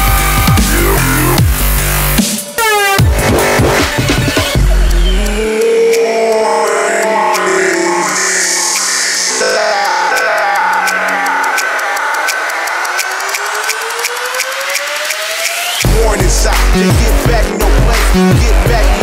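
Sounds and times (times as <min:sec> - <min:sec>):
deep bass: 0:00.0 - 0:02.2, 0:03.0 - 0:05.6, 0:15.8 - 0:19.0
fast ticking percussion: 0:00.3 - 0:19.0.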